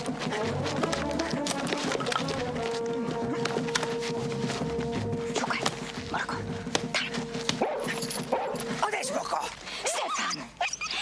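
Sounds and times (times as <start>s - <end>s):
dog barking and yelping: 7.0s - 8.7s.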